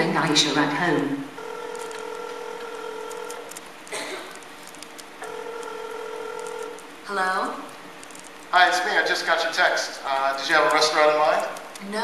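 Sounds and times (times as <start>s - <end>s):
phone ringback tone: 1.4s - 3.4s, 5.2s - 6.8s.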